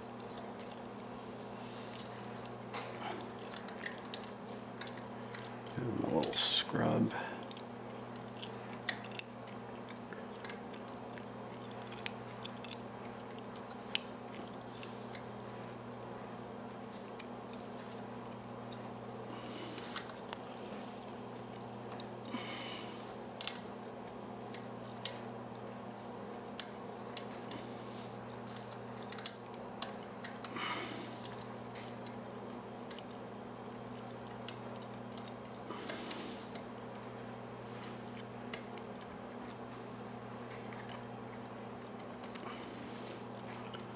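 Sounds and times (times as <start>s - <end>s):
steady low hum: 0.0s - 43.9s.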